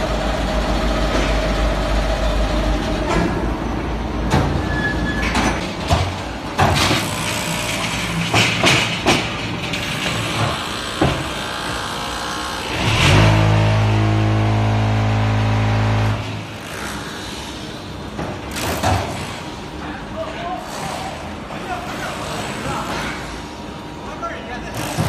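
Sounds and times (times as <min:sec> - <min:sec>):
loud steady machine hum: 0:00.0 - 0:04.8, 0:05.8 - 0:25.0
metal clanks and knocks: 0:04.2 - 0:11.9.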